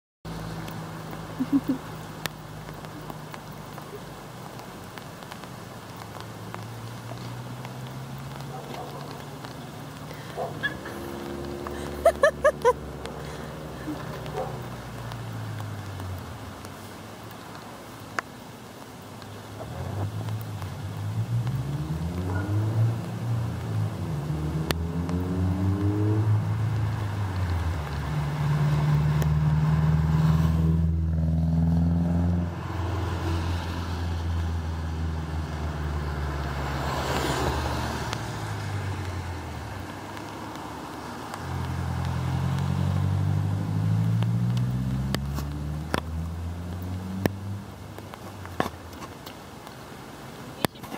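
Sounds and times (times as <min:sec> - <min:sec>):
vehicle engines passing: 0:00.3 - 0:50.9.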